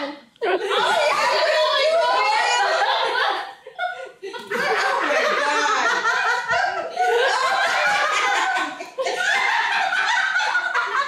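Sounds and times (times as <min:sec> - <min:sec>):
people laughing: 0:00.4 - 0:11.0.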